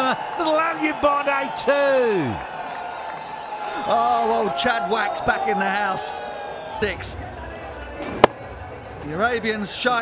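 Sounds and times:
stadium crowd rumble: 0.0 - 10.0.

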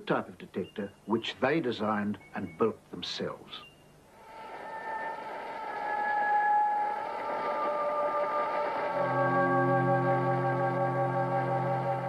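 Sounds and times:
hissing electronic drone: 4.1 - 12.0.

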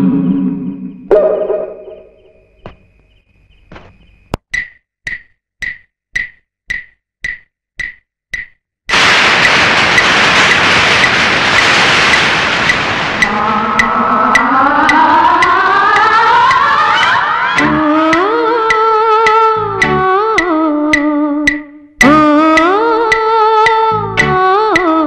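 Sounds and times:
evenly spaced clicks: 4.4 - 25.0
sharp crack: 8.9 - 15.0
loud steady rushing noise: 8.9 - 17.6
fading note: 13.2 - 17.9.

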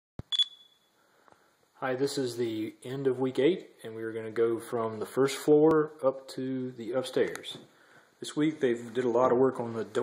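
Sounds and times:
short high electronic beep: 0.2 - 0.9.

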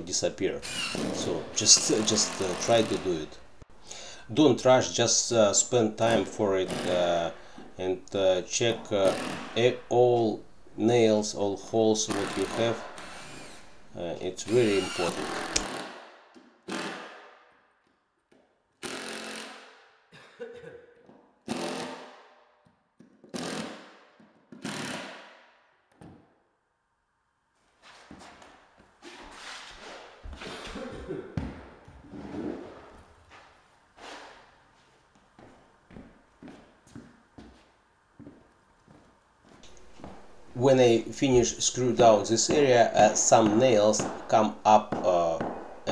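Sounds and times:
cordless drill driving screws: 0.6 - 1.2, 12.1 - 13.8, 14.5 - 15.9, 18.8 - 19.6.

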